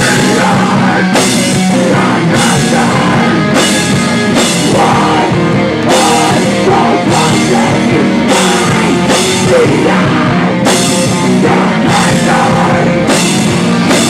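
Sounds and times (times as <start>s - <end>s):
heavy metal band playing: 0.0s - 14.0s
person singing into microphone: 0.0s - 14.0s.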